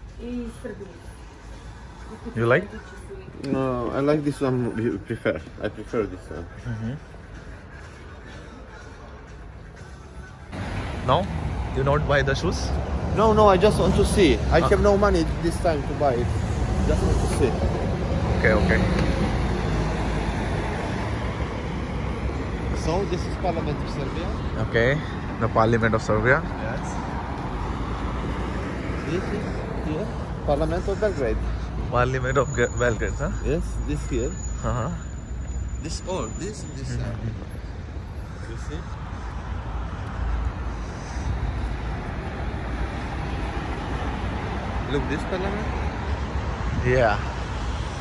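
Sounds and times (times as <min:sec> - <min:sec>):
street traffic noise: 0:00.0 - 0:48.0.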